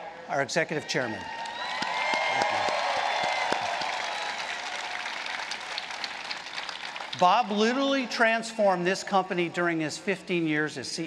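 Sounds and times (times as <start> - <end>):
crowd applauding: 1.2 - 7.6.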